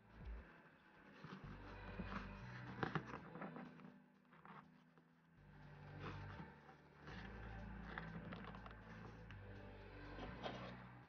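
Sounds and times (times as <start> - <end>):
low steady background rumble: 5.3 - 11.0.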